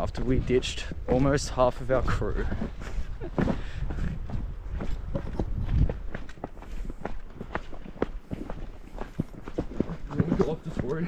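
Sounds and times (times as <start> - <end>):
footsteps on dirt and rock: 0.0 - 11.0.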